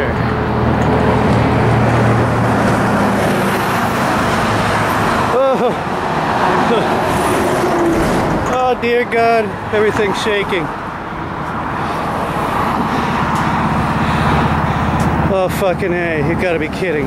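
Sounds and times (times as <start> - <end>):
bus passing: 0.0 - 17.0
road traffic: 0.0 - 17.0
low engine hum: 9.5 - 17.0.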